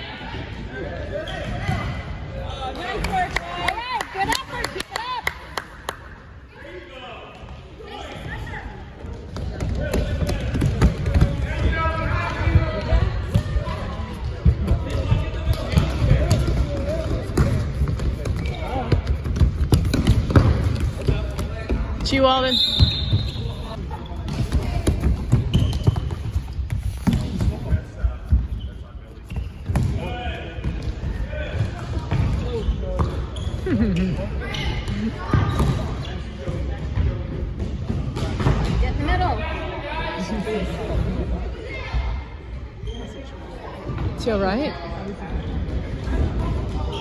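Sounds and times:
spectators talking: 6.1 - 47.0
shoe squeak: 22.4 - 24.6, 25.4 - 26.6, 28.5 - 29.8, 32.5 - 36.3, 42.8 - 43.4.

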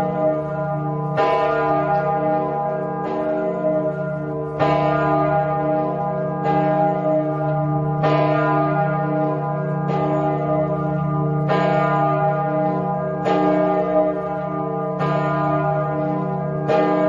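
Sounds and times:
church bell tolling: 0.0 - 17.0.

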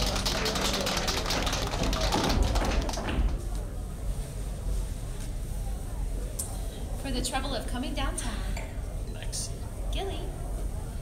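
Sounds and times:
hand clapping: 0.0 - 3.5.

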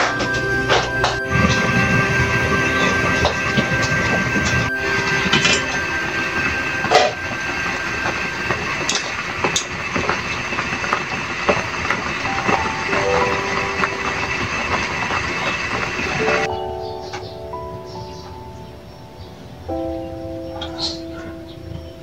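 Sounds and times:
water boiling in a pot: 0.0 - 16.5
music: 0.0 - 22.0.

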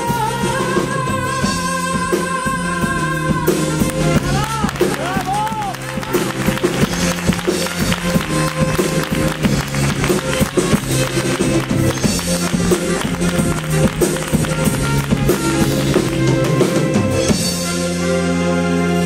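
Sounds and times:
drum kit strokes: 0.0 - 19.0.

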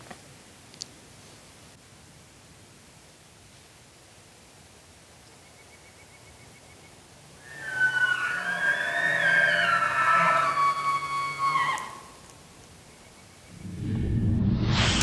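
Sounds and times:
elk bugling: 7.4 - 12.2.

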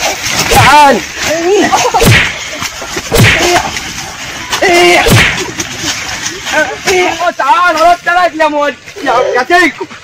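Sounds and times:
whip-like crack of a blow: 1.9 - 2.4, 3.1 - 3.8, 4.6 - 5.6.

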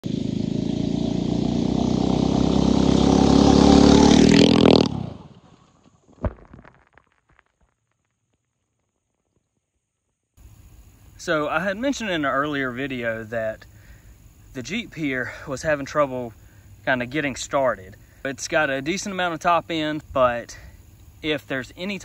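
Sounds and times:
small gas engine revving: 0.0 - 5.5.

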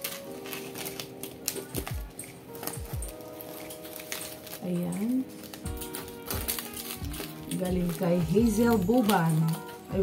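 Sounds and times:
background music with held notes: 0.0 - 10.0
scissors cutting plastic and tape: 0.0 - 10.0.

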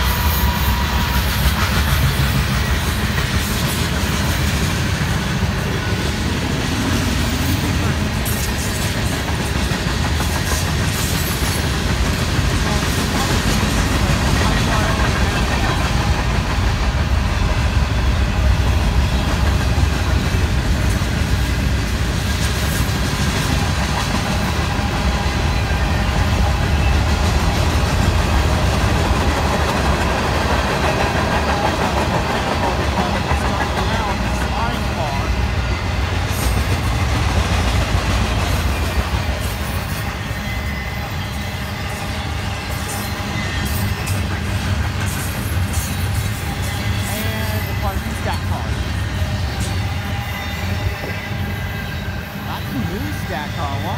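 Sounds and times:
train wheels on rails: 0.0 - 53.9.

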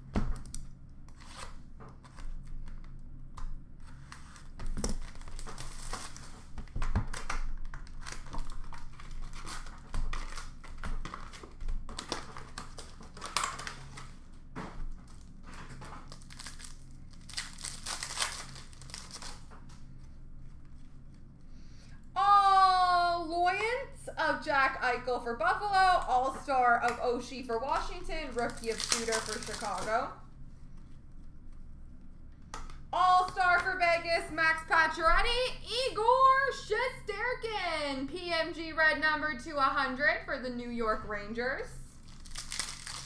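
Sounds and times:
wrappers tearing and crinkling: 3.9 - 14.3, 15.0 - 19.8, 27.8 - 30.2, 41.9 - 43.0.

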